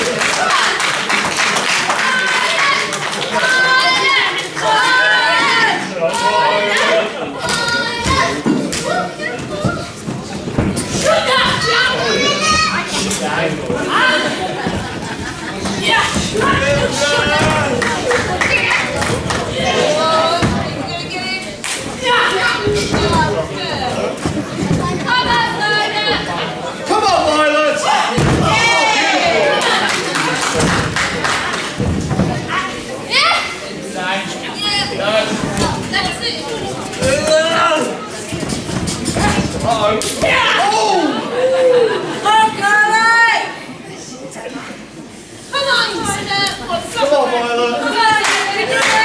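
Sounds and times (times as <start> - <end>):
crowd calling and shouting: 0.0 - 49.0
children shouting: 11.0 - 12.9, 27.8 - 29.9.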